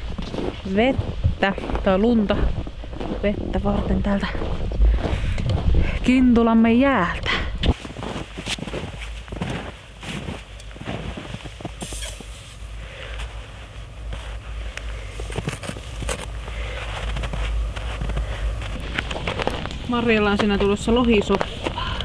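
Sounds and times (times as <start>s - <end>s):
footsteps crunching in snow: 0.0s - 6.2s, 7.7s - 22.0s.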